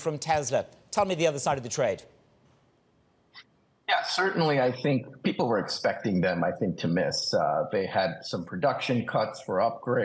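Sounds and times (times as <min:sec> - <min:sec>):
faint mouth noise: 0:03.3 - 0:10.0
man saying a word: 0:03.9 - 0:10.0.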